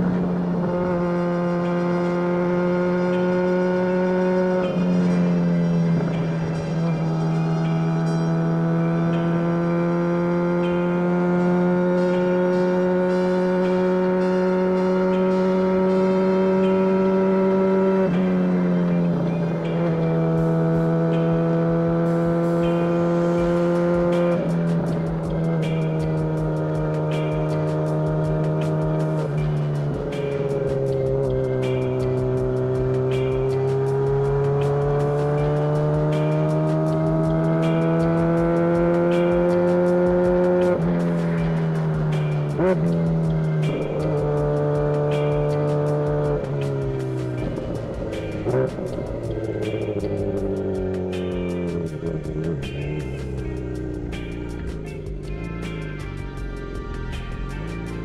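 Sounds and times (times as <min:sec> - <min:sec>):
motorcycle engine under load: 0:19.0 - 0:56.4.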